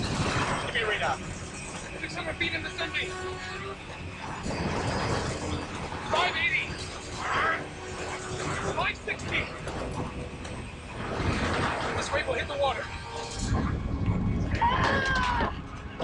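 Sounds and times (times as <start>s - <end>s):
continuous low rumble: 0.0s - 16.0s.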